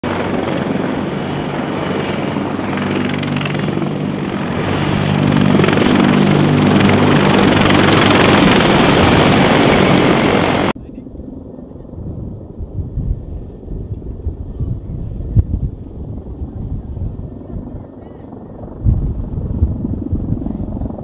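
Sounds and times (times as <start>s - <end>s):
helicopter rotor and turbine: 0.0s - 21.0s.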